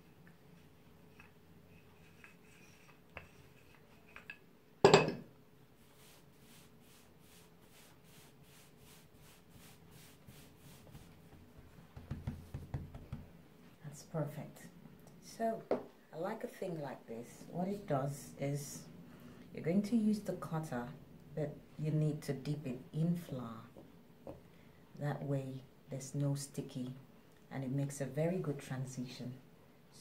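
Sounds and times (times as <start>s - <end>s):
rolling pin on dough: 0.5s - 4.3s, 5.8s - 13.3s
hands patting dough: 6.0s - 13.4s
rolling pin knocking on table: 11.9s - 13.3s.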